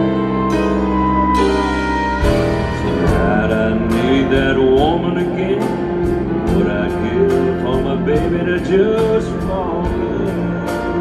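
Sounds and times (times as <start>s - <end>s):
country band playing: 0.0s - 11.0s
man singing: 2.6s - 11.0s.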